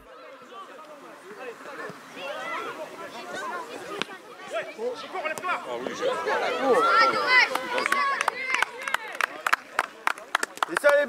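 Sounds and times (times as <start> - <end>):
children calling and shouting: 0.0 - 10.8.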